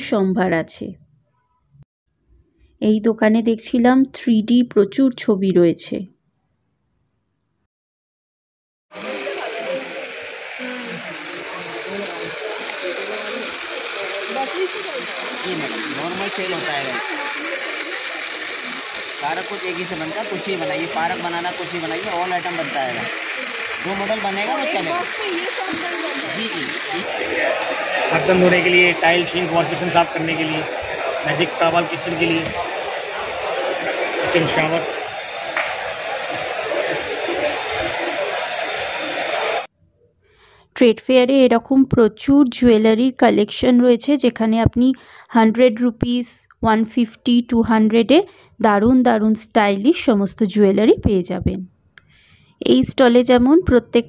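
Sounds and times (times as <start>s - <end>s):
crowd babble: 8.9s - 39.7s
faint indistinct voices: 9.0s - 39.7s
hall noise hiss: 9.0s - 39.7s
shower head spraying into tub: 9.7s - 39.6s.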